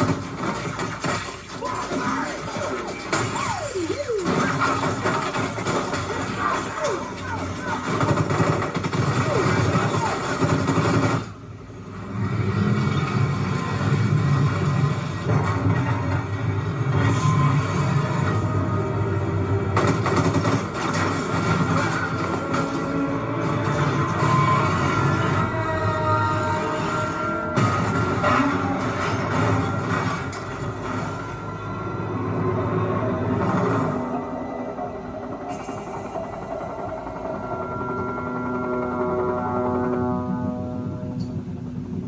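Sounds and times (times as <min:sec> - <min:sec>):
action film music: 0:00.0 - 0:42.0.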